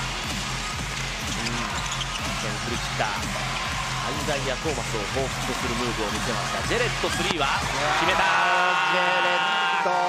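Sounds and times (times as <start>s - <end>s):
arena music: 0.0s - 10.0s
crowd noise: 0.0s - 10.0s.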